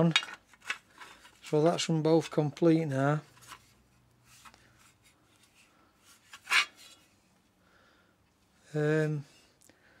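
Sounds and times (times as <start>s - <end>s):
metal plates rubbing and scraping: 6.1s - 7.0s.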